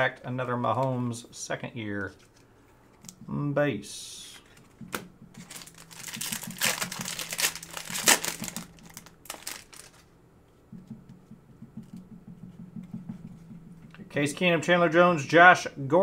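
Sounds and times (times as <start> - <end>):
foil wrapper crinkling: 5.4 - 10.1.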